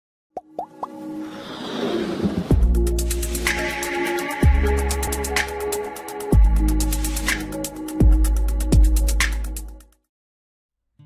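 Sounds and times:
cartoon plop sound effects: 0.4s - 1.0s
musical build-up: 0.6s - 8.0s.

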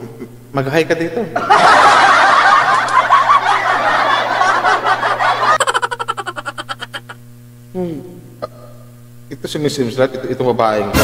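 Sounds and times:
high-pitched laughter of several people: 1.4s - 7.2s.

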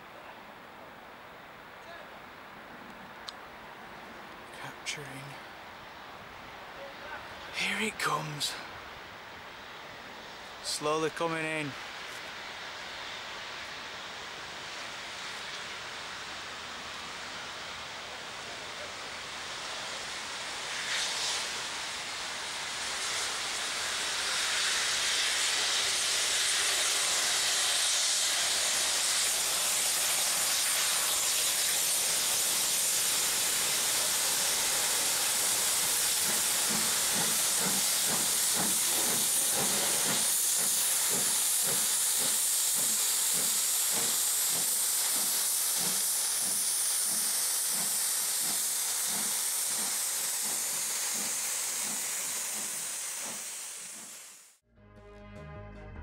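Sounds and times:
loud hiss of steam: 6.8s - 54.6s
steam locomotive rhythmic beat: 22.9s - 56.0s.

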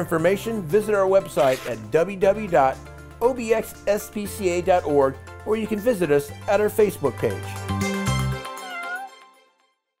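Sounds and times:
background music chord ringing: 0.0s - 8.5s
cat meow: 8.4s - 9.2s.

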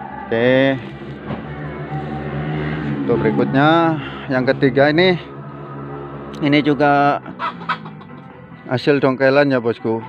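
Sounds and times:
low hum: 0.0s - 7.4s
man speaking: 3.0s - 5.3s.

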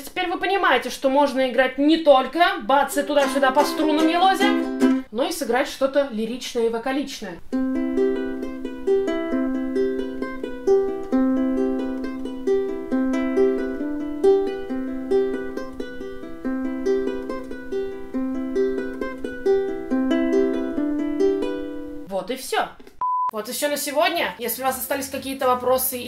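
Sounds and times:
ukulele fingerpicked arpeggio: 2.9s - 5.1s, 7.5s - 22.1s.

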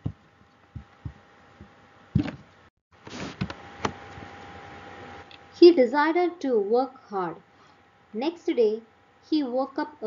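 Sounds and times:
soft low thumps: 0.0s - 2.4s
faint steady hum: 0.0s - 10.0s.

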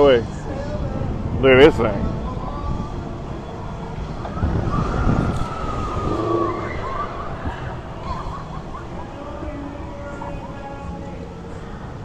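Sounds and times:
street traffic rumbling: 0.0s - 12.0s
siren wailing: 4.4s - 7.8s.

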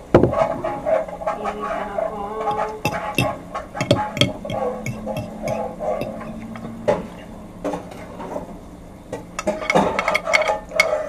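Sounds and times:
faint steady hum: 0.0s - 11.0s
ceramic plate clicking and knocking: 2.5s - 6.8s, 9.4s - 11.0s.

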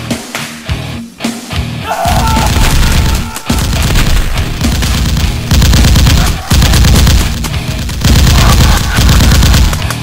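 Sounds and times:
background music: 0.0s - 10.0s
machine-gun fire: 2.4s - 10.0s.

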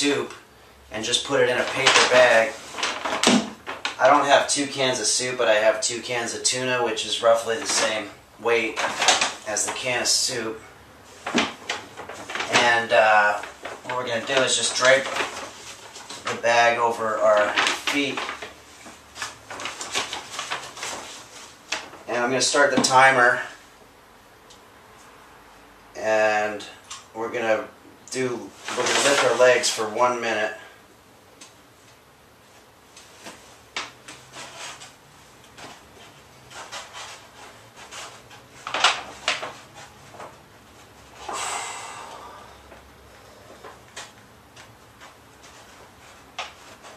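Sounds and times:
paper bags rustling: 1.0s - 6.3s, 6.9s - 23.6s, 28.4s - 30.6s, 33.0s - 42.4s, 43.4s - 46.9s
forceful breath blown out: 41.2s - 43.5s.

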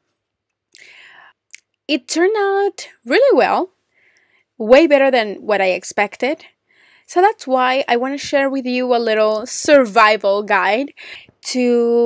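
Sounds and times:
woman breathing in softly: 0.8s - 1.4s, 6.6s - 7.1s.

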